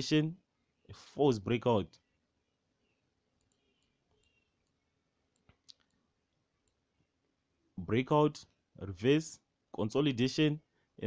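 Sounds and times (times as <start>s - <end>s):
faint computer mouse clicks: 3.4s - 6.0s.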